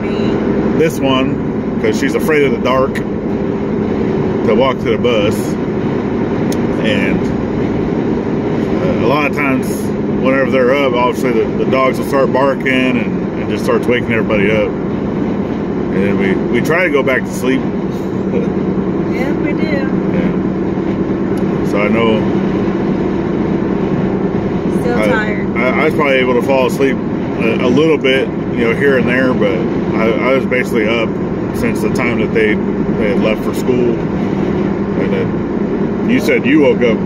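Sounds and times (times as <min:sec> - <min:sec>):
car cabin road and engine noise: 0:00.0 - 0:37.0.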